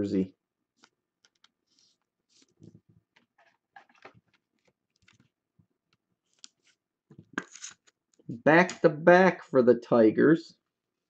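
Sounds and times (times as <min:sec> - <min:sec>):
plastic handling: 0:00.8 - 0:08.0.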